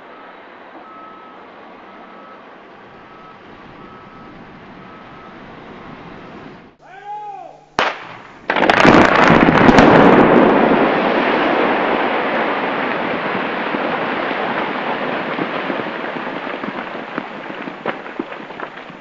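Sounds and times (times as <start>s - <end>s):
loud explosion: 7.8s - 19.0s
rumble of settling debris: 7.8s - 19.0s
sharp crack: 7.8s - 19.0s.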